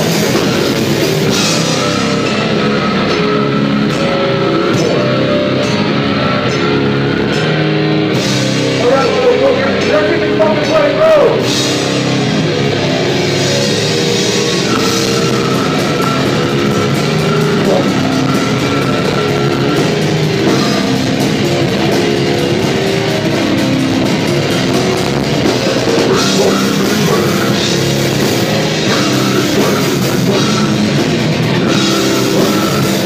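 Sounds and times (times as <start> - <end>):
distorted electric guitars: 0.0 - 33.0
drum kit: 0.0 - 33.0.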